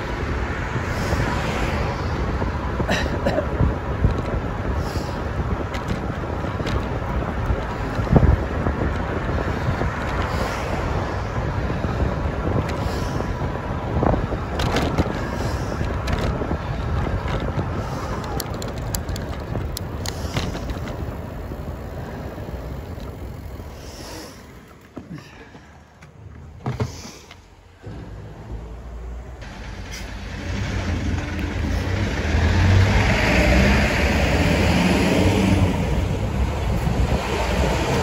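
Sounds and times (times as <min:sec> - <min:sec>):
wind buffeting microphone: 0:00.0 - 0:26.6, 0:29.4 - 0:38.0
tyre and road noise: 0:00.0 - 0:38.0.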